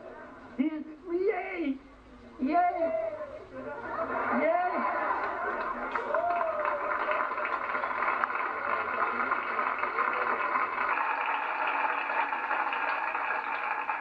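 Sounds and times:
audience laughing and applauding: 3.7s - 14.0s.

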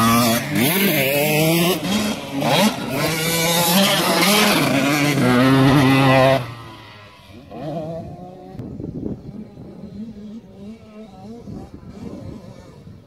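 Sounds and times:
two-stroke motorcycle engine revving: 0.0s - 13.0s.

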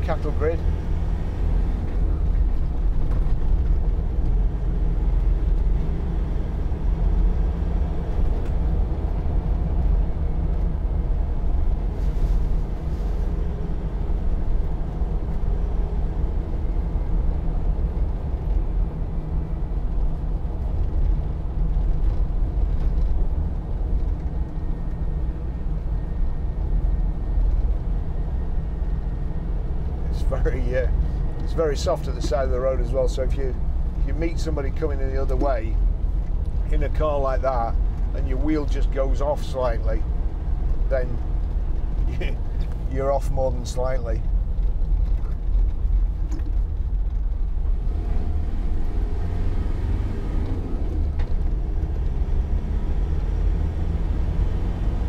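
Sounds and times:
diesel engine drone inside cabin: 0.0s - 55.0s
road and wind noise: 0.0s - 55.0s.

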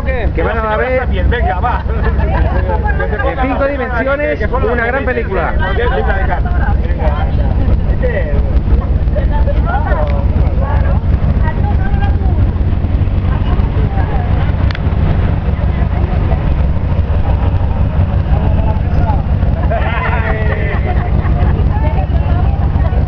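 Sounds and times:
vehicle engine idling: 0.0s - 23.0s
voices of small group: 0.0s - 23.0s.

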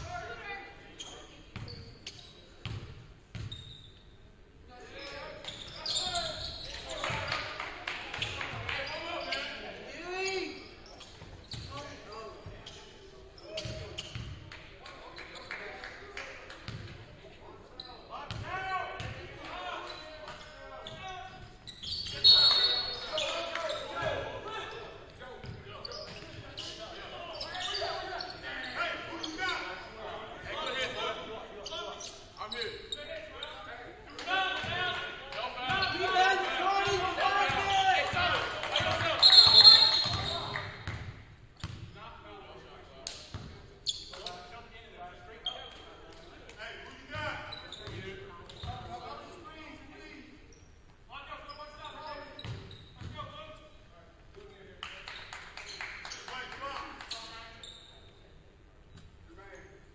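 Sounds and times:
basketball bouncing on court: 2.6s - 3.6s, 13.6s - 14.4s, 16.6s - 17.0s, 18.3s - 19.3s, 38.8s - 42.0s, 43.2s - 43.6s, 52.4s - 53.2s
referee whistle blasts: 39.2s - 40.4s.

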